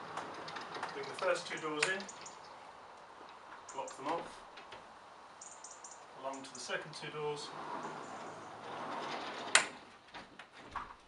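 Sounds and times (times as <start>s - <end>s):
folding door sliding on track: 0.0s - 2.3s, 7.1s - 11.0s
door clacking shut: 7.7s - 11.0s.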